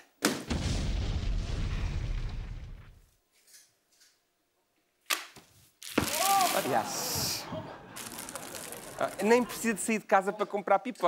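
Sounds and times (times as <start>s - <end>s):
deep rumbling boom: 0.5s - 3.0s.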